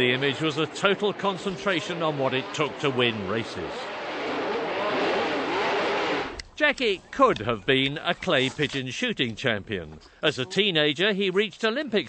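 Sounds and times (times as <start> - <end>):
racing car engine at high revs: 0.0 - 6.4.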